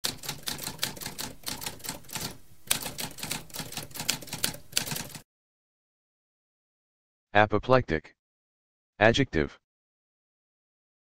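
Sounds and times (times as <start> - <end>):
typewriter keys typing: 0.0 - 5.2.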